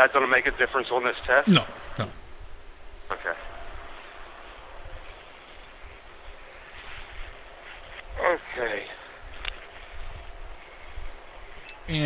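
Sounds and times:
telephone line hiss and rumble: 0.0 - 12.0.

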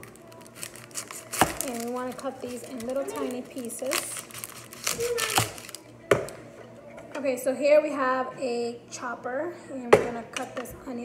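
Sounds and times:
onion skin crackling: 0.0 - 5.9.

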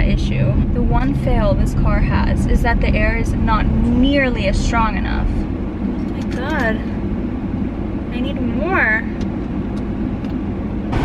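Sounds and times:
air conditioning: 0.0 - 11.0
car cabin rumble: 0.0 - 11.0.

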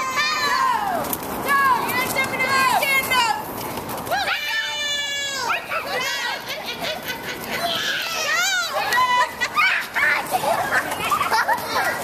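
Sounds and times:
children shouting and calling out: 0.0 - 12.0.

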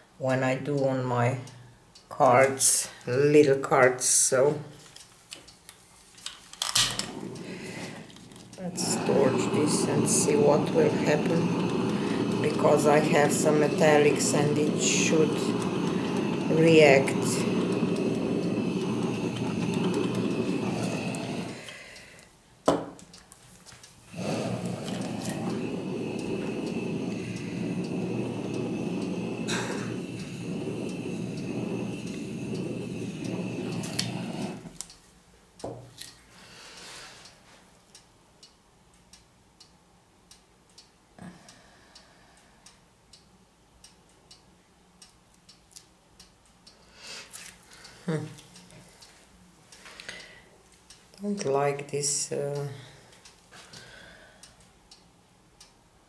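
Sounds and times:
gas torch flame hissing: 6.8 - 22.2, 24.0 - 34.9.

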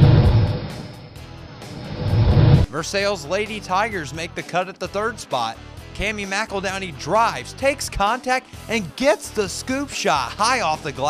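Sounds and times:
rising swell: 0.0 - 2.8
music stinger with low booms: 0.0 - 3.0.

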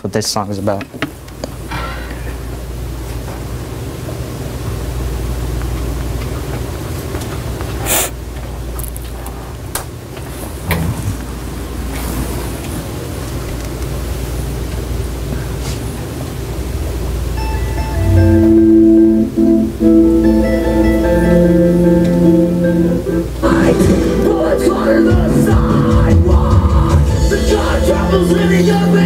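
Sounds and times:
steady low hum with hiss: 0.0 - 29.0
short burst of hiss: 7.8 - 8.2.

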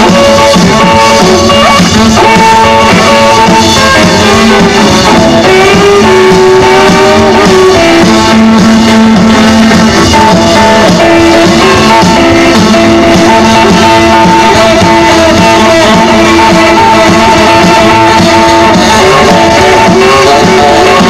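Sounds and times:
rockabilly band playing: 0.0 - 21.0.

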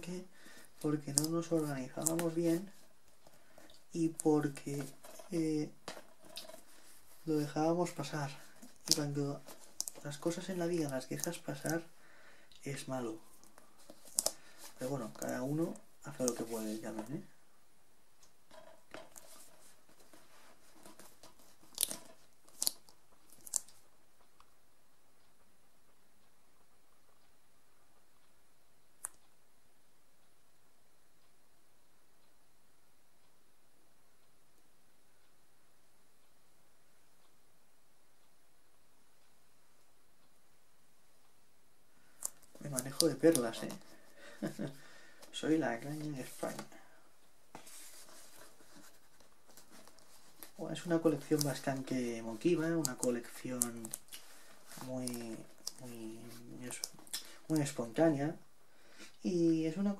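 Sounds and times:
plastic tape cases rustling: 0.0 - 11.9, 12.6 - 17.3, 18.5 - 23.8, 42.2 - 46.8, 47.5 - 58.2.

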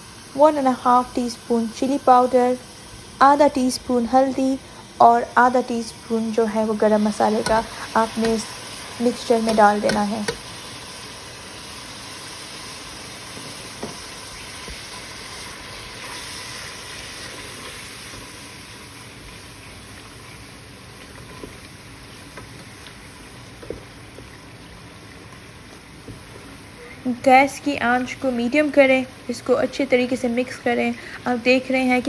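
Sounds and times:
masala sizzling in a pot: 0.0 - 32.0.

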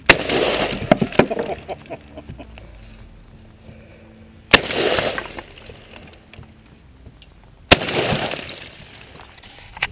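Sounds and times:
gunshots: 0.0 - 1.4, 4.5 - 5.5, 7.7 - 9.2.

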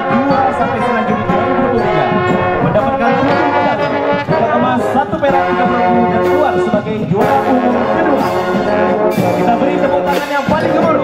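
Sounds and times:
marching band brass playing: 0.0 - 10.9.

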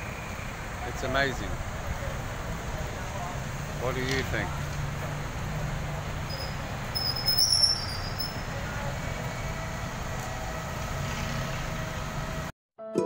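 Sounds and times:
traffic and engines humming: 0.0 - 12.5
brief high squeal: 6.3 - 8.5.

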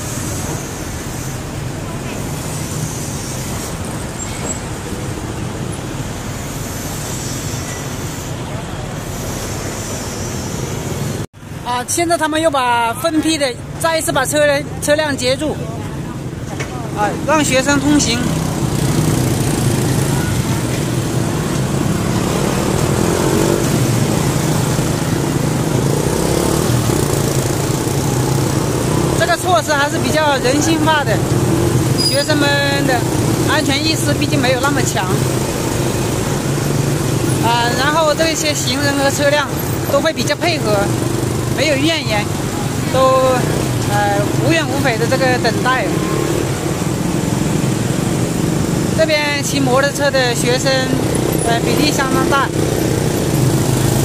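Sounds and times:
motorbike engines idling: 0.0 - 54.0
street traffic: 0.0 - 54.0.

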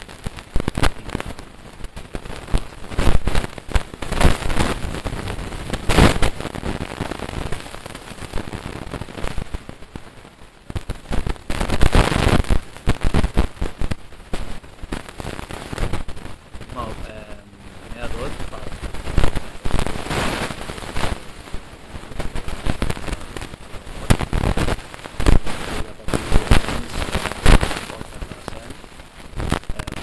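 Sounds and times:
microphone crackling and rustling: 0.0 - 30.0
man speaking: 16.7 - 18.8, 25.7 - 28.8, 29.7 - 30.0.

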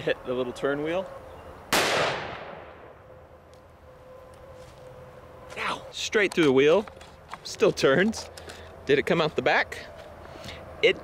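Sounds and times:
gunshot hitting steel: 1.7 - 2.9.

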